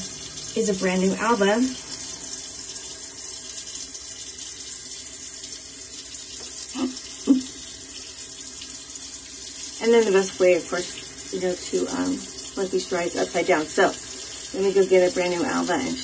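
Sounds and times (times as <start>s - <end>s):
water running from a tap: 0.0s - 16.0s.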